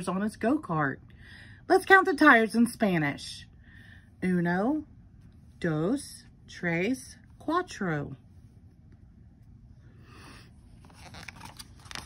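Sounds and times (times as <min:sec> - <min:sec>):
paper pages rustling: 0:10.7 - 0:12.0.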